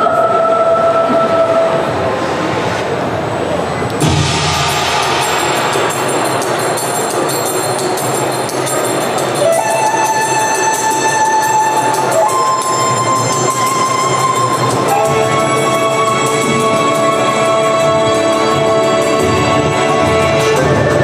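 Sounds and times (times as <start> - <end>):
music over loudspeakers: 4.0 - 21.0.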